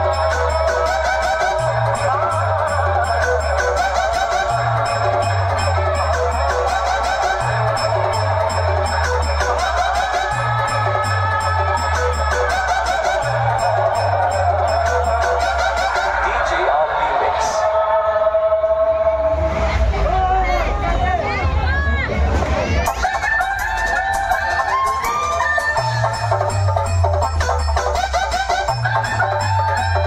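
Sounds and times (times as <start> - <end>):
deep bass line: 0.0 - 17.0, 19.2 - 30.0
loud dance music: 0.0 - 20.2, 22.6 - 30.0.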